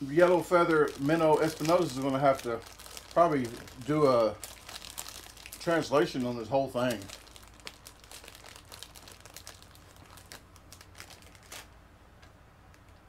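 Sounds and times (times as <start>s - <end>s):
plastic wrapper crinkling: 0.0s - 11.8s.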